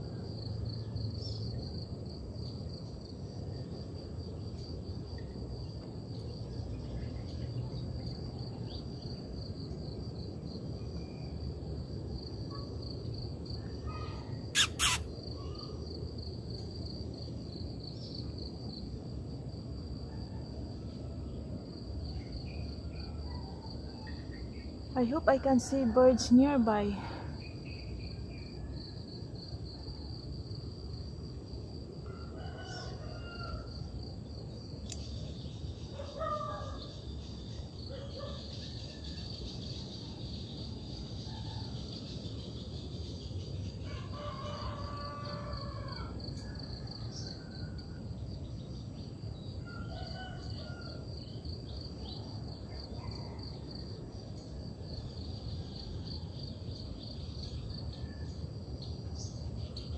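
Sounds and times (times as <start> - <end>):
pulsing insect trill: 14.5 - 18.9, 27.3 - 52.8
short bird calls: 14.6 - 15.1
rooster crowing: 32.0 - 33.8, 43.8 - 48.0, 49.6 - 51.2.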